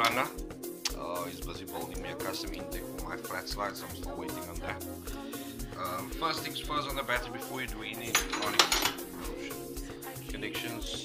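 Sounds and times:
background music with beat: 0.0s - 11.0s
spanner clinking on metal: 8.0s - 9.1s.

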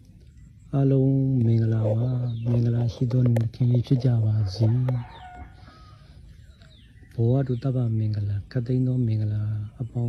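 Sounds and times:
faint bird chirps: 0.0s - 10.0s
quiet outdoor background noise: 0.0s - 10.0s.

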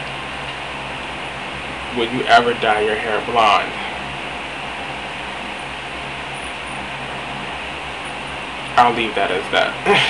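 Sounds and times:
room fan running: 0.0s - 10.0s.

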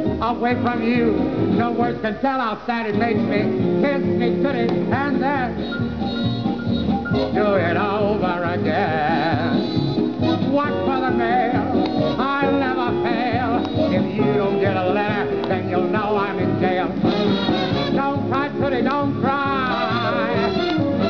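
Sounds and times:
dance band with brass playing: 3.0s - 21.0s.

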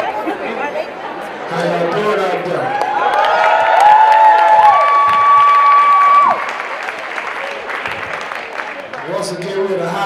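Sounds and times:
applause and cheering: 2.6s - 9.8s.

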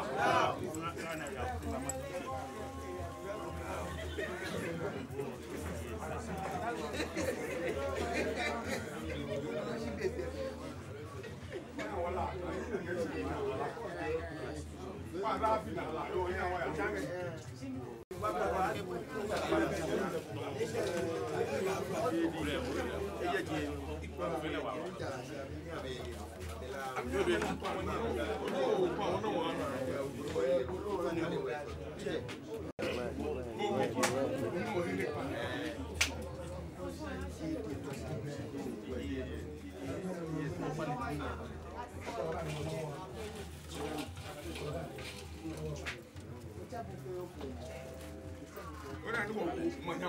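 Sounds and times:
people chattering: 0.0s - 50.0s
people talking at once: 0.0s - 50.0s.

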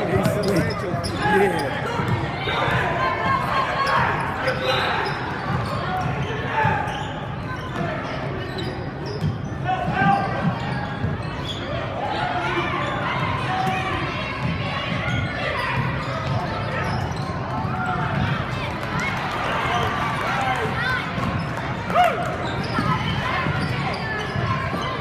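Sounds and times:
voices and shouts echoing: 0.0s - 25.0s.

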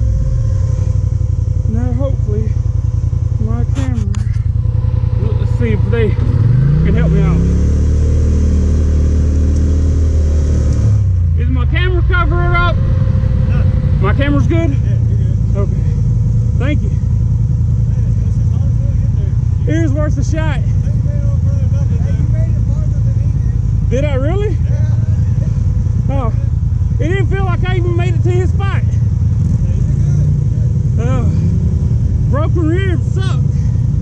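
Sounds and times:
atv engine idling: 0.0s - 34.0s.

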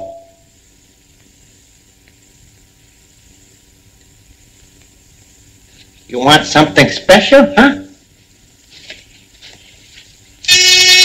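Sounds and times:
film soundtrack hiss: 0.0s - 11.0s.

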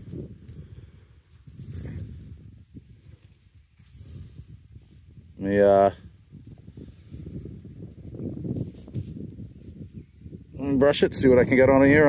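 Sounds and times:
handling noise rumbling and scuffing: 0.0s - 5.4s.

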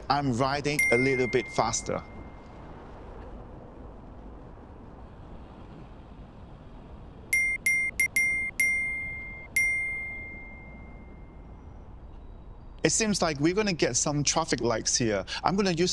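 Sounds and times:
low traffic rumble: 0.0s - 15.9s
wind: 0.0s - 15.9s
bright dings: 0.8s - 2.4s, 7.3s - 11.4s.

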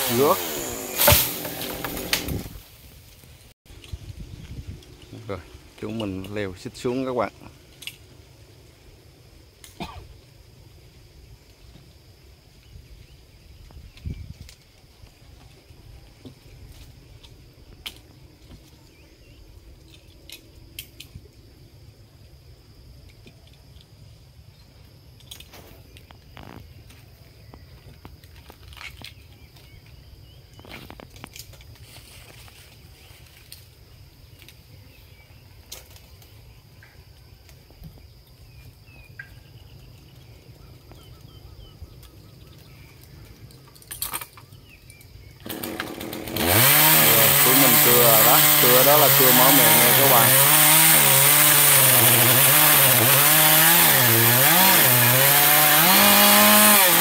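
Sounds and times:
chainsaw starting and revving: 0.0s - 2.6s, 45.4s - 57.0s.

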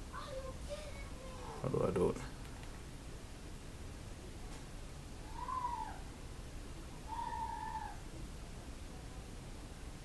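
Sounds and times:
short pitched animal calls: 5.3s - 6.0s, 7.1s - 8.0s.

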